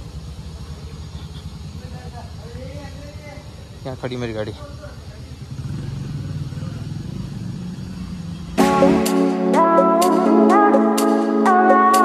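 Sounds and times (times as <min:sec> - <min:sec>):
small motorcycle engine rumbling: 0:00.0 - 0:09.0
background music: 0:08.6 - 0:12.0.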